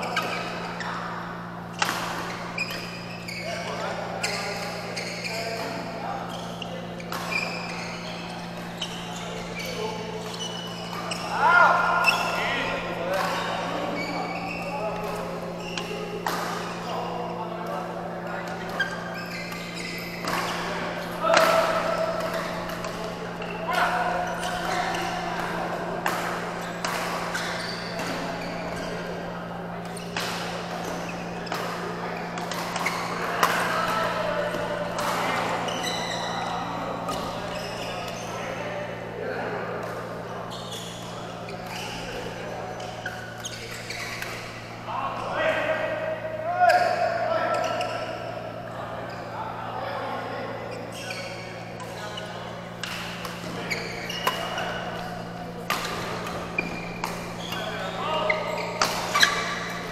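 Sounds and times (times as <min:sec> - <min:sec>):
players' voices and calls: 0:00.0 - 0:59.9
racket hitting shuttlecock: 0:01.7 - 0:03.4, 0:14.3 - 0:16.8, 0:18.4 - 0:36.2, 0:52.6 - 0:57.6, 0:58.3 - 0:59.9.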